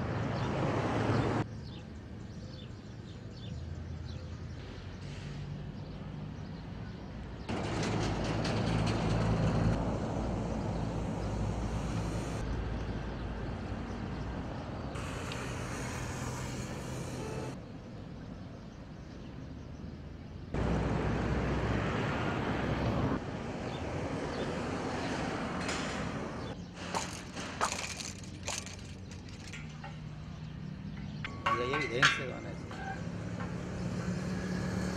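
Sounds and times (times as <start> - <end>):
street traffic noise: 0.0 - 34.9.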